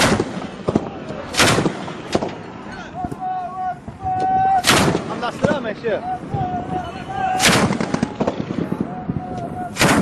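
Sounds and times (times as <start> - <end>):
heavy gun shots with echo: 0.0 - 2.4, 4.6 - 5.6, 7.4 - 8.6, 9.8 - 10.0
sharp crack: 0.0 - 2.5, 4.6 - 5.6, 7.4 - 10.0
men shouting: 2.6 - 8.2.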